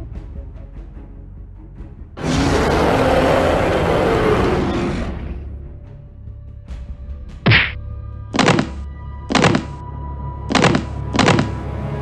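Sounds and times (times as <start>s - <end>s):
low droning music: 0.0s - 12.0s
fight impact hits: 7.5s - 7.8s, 8.4s - 9.8s.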